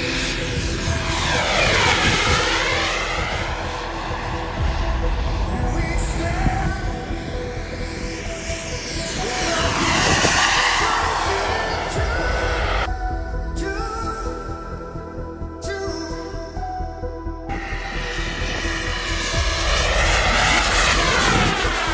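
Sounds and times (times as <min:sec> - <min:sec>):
model jet turbine flyby: 0:00.0 - 0:12.9, 0:17.5 - 0:21.9.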